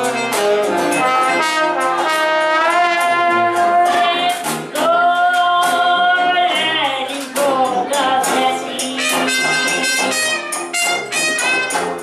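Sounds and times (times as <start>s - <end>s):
jazz band playing: 0.0s - 12.0s
woman singing long notes: 3.4s - 9.4s.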